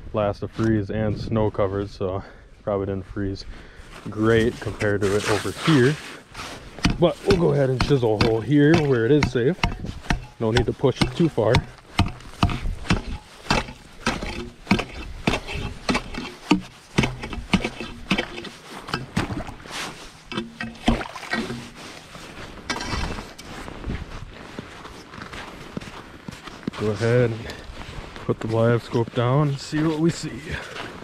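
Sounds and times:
ice chisel chopping ice: 6.8s - 19.6s, 20.3s - 21.8s.

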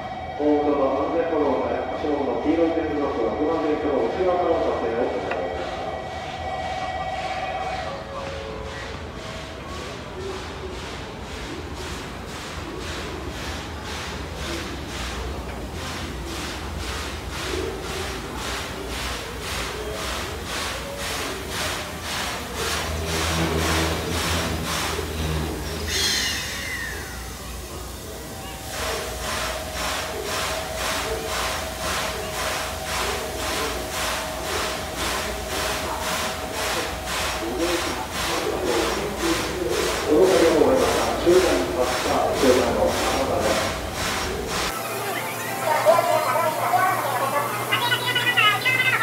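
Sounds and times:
steam locomotive rumble and hiss: 0.0s - 49.0s
crowd voices: 14.2s - 49.0s.

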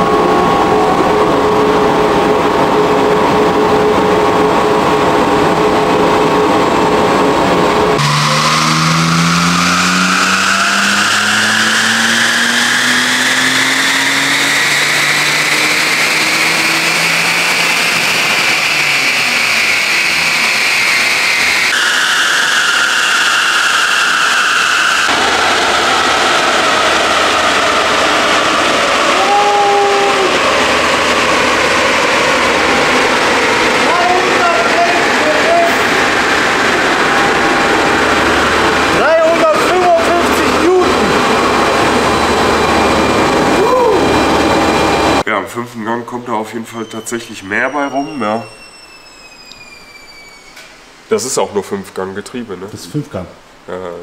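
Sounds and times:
car engine at full throttle: 0.0s - 45.3s
high supercharger whine: 0.0s - 45.3s, 46.3s - 51.7s.

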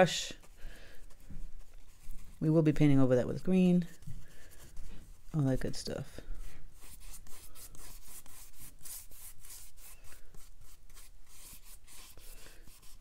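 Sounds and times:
wet paintbrush rubbing on paper: 0.0s - 13.0s.

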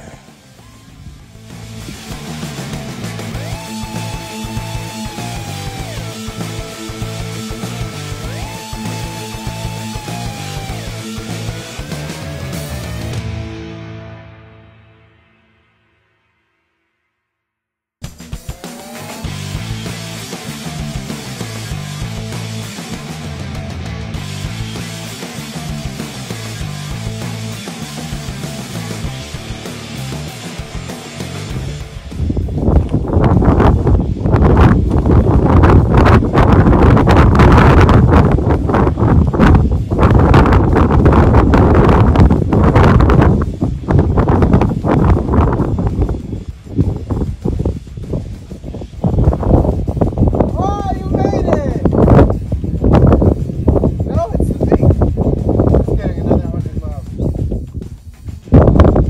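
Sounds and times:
background music: 0.0s - 16.5s, 18.0s - 59.0s
wind buffeting microphone: 31.8s - 59.0s.

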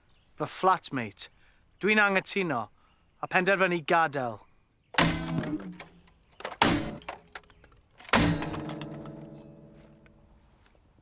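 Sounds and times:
guitar smashing onto stones: 5.0s - 10.0s.

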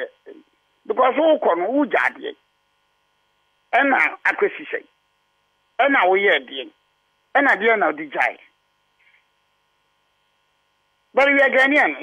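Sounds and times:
man speaking: 0.0s - 2.4s, 3.7s - 4.9s, 5.8s - 6.8s, 7.4s - 8.5s, 11.1s - 12.0s
faint steady hum: 0.0s - 12.0s.

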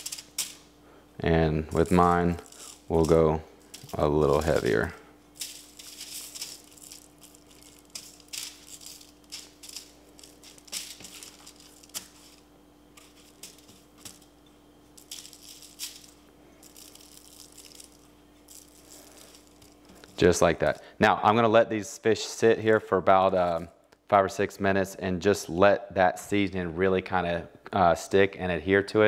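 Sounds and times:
spice grains landing on foil: 1.7s - 20.8s.

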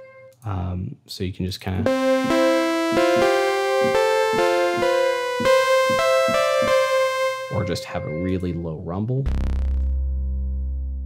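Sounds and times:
buzzy synthesizer notes: 1.8s - 8.7s.

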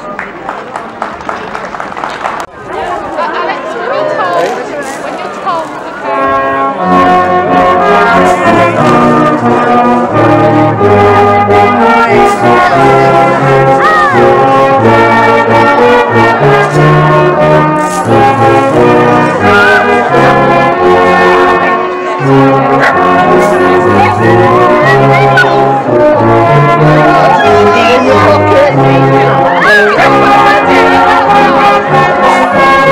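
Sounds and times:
brass instruments playing tune: 5.9s - 32.9s.

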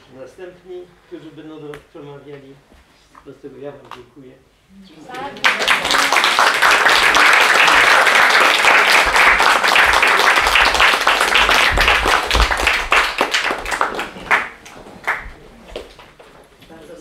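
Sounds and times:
audience applauding: 5.3s - 16.0s.

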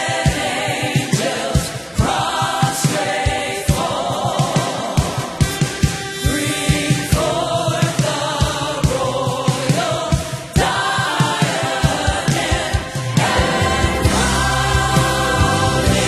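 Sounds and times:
drums keeping a beat: 0.0s - 16.0s
gospel choir singing: 0.0s - 16.0s
trumpet: 5.4s - 7.4s
low bass notes: 13.4s - 16.0s.

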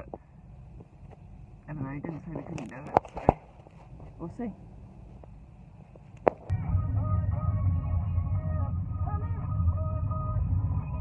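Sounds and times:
car engine starting: 5.9s - 11.0s
car stereo playing music: 6.5s - 11.0s.

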